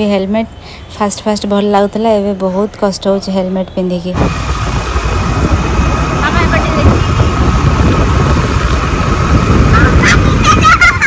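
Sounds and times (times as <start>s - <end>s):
road traffic: 0.0s - 11.0s
scooter running: 4.1s - 11.0s
wind buffeting microphone: 4.1s - 11.0s.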